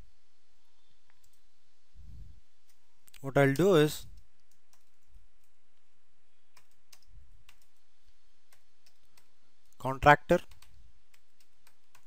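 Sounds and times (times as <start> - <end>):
low background hiss: 0.0 - 12.0.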